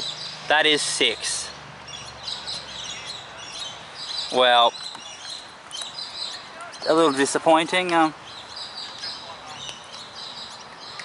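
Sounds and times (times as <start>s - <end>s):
bird chirps: 0.0s - 1.2s, 1.9s - 7.4s, 8.0s - 11.0s
man talking: 0.5s - 1.6s, 6.5s - 8.2s.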